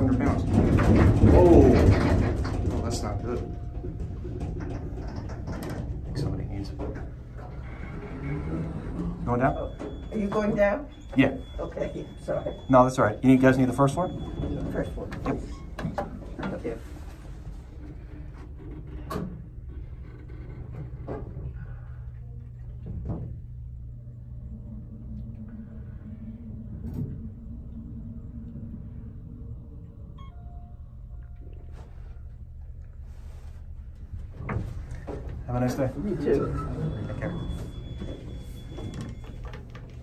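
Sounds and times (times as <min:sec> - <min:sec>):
elevator low hum: 0:00.0 - 0:40.0
elevator tone: 0:00.0 - 0:40.0.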